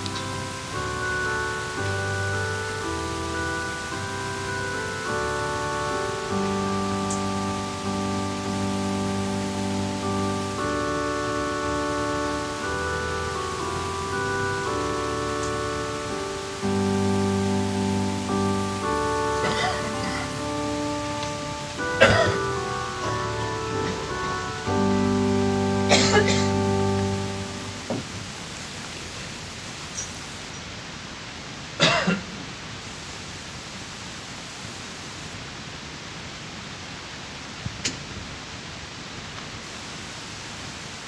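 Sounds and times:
keyboard playing slow chords: 0:00.0 - 0:28.5.

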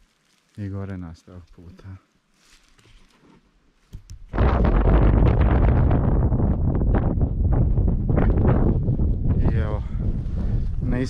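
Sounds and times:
wind buffeting microphone: 0:04.1 - 0:11.0.

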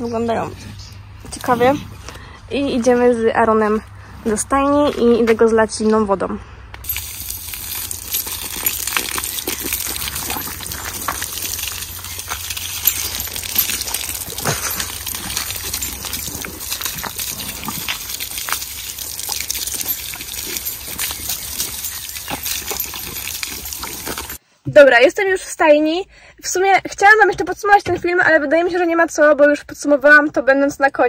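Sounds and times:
garden hose spraying water: 0:06.8 - 0:24.4
small water splashes: 0:06.9 - 0:24.4.

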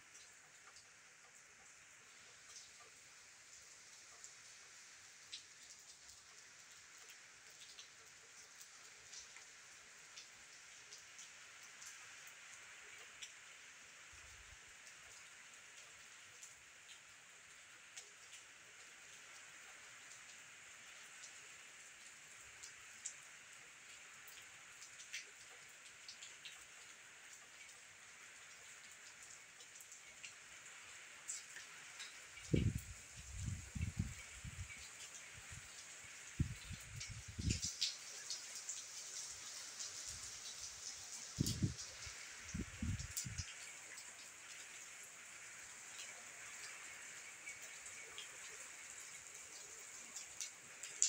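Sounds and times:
light rain on leaves: 0:00.0 - 0:51.0
raindrops ticking: 0:31.2 - 0:44.8, 0:49.4 - 0:51.0.

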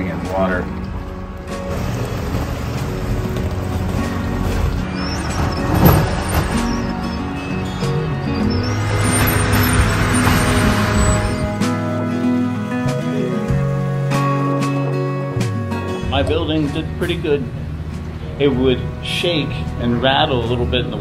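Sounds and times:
background music: 0:00.0 - 0:21.0
rain: 0:00.7 - 0:07.9, 0:08.6 - 0:11.6
strong wind rushing: 0:00.7 - 0:11.7.

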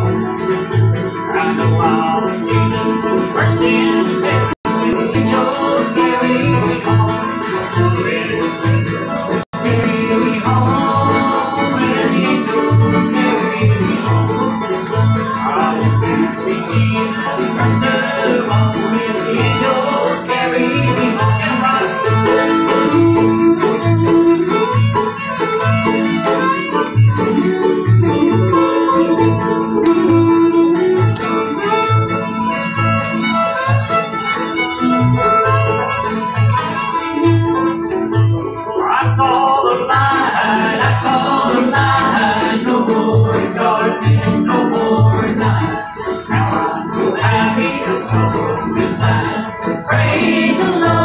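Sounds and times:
banjo: 0:00.0 - 0:51.0
fiddle: 0:00.0 - 0:51.0
strummed acoustic guitars: 0:00.0 - 0:51.0.

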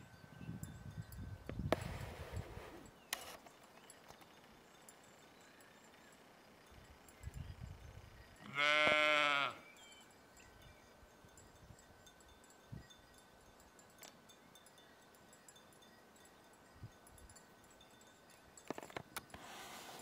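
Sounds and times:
sheep bleating: 0:08.5 - 0:09.6.

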